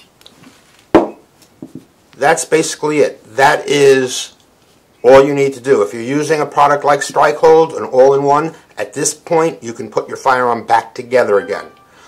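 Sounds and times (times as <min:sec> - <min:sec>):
pistol part thump on cloth: 0:00.9 - 0:01.8.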